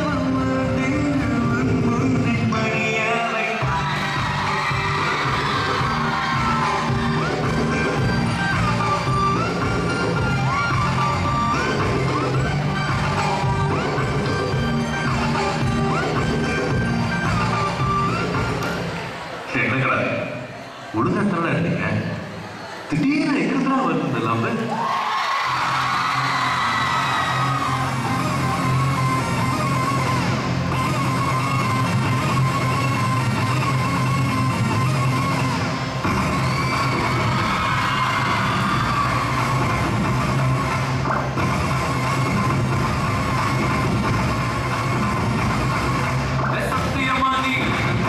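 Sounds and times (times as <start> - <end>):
dance music with bass line: 0.0 - 19.0, 25.5 - 48.0.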